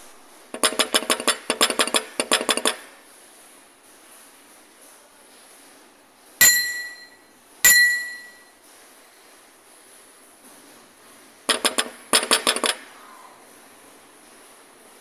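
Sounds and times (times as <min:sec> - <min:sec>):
bright ringing dings: 0:06.4 - 0:08.6.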